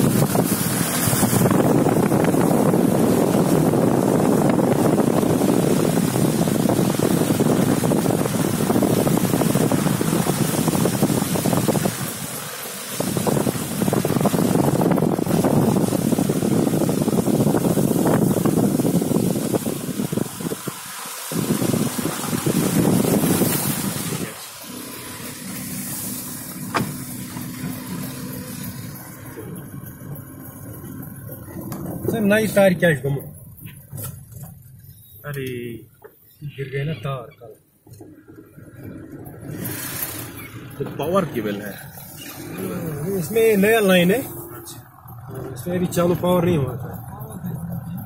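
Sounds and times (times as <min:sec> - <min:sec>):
wind and road noise: 0:00.0 - 0:48.0.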